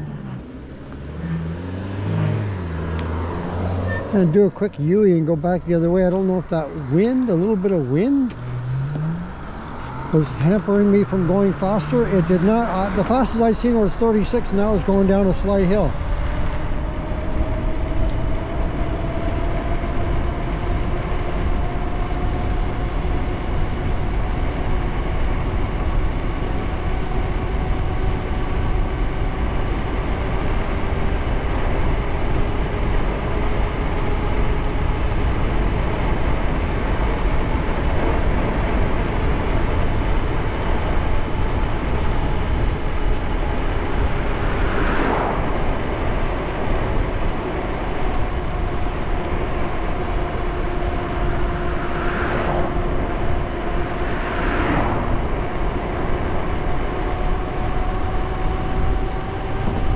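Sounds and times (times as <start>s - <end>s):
electric motor whine: 0.0s - 32.8s
wind rushing over microphone: 15.8s - 59.9s.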